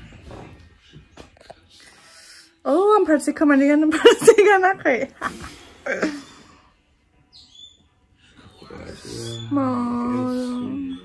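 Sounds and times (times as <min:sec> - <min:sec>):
high-pitched bird chirp: 0:07.2 - 0:11.0.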